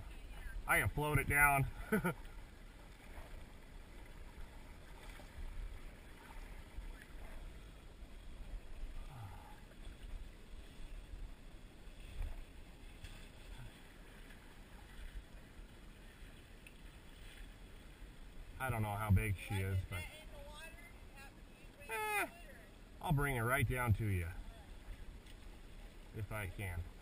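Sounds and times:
fast river flowing: 0.0 - 26.2.

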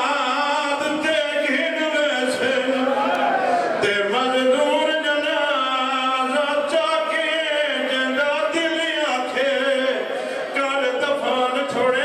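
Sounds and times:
man chanting a lament: 0.0 - 12.0.

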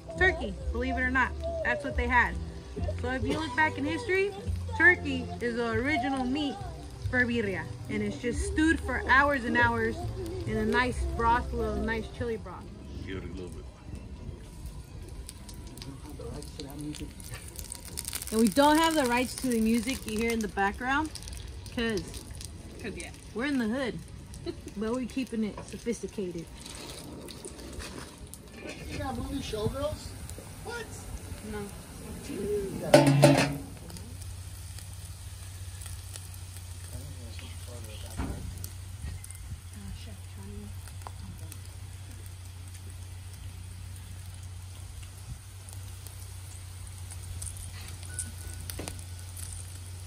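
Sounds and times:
faint voices: 0.0 - 27.5
tortillas sizzling in oil: 0.0 - 50.0
crackling pops: 13.4 - 32.0, 32.8 - 50.0.

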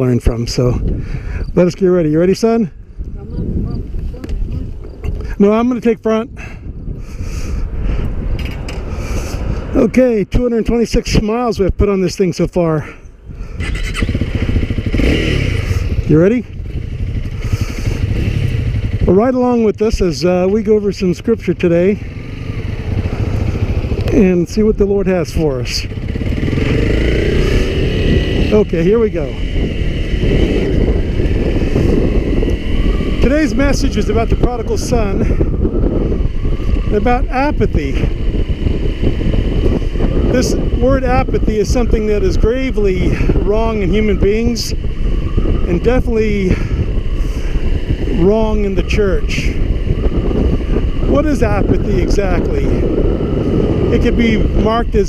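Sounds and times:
motorcycle engine rumble: 0.0 - 55.0
road noise: 0.0 - 55.0
wind buffeting microphone: 0.0 - 55.0
motorcycle engine idling: 13.1 - 19.3, 21.9 - 24.2, 25.7 - 33.9.

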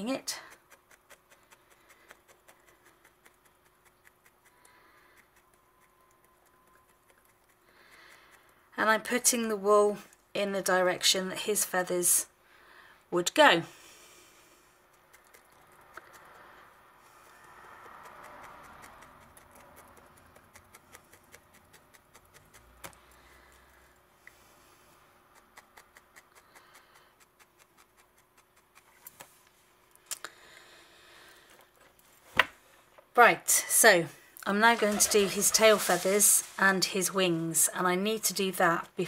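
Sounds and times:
felting needle jabbing wool: 0.0 - 9.4, 14.7 - 29.5
rustle of wool: 34.7 - 37.2.

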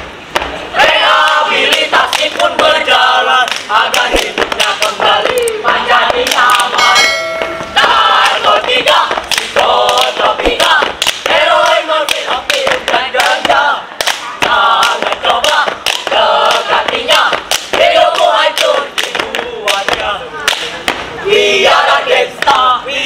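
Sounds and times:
sharp rhythmic hits: 0.3 - 21.2
boys chanting in unison: 0.7 - 7.2, 7.8 - 23.0
brief steady tone: 6.8 - 7.8.

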